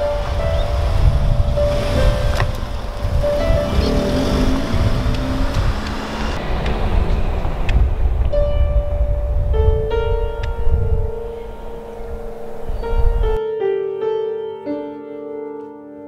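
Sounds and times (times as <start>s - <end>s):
car driving off: 0.0s - 10.9s
wind rumble on microphone: 0.0s - 13.4s
piano music: 0.0s - 16.0s.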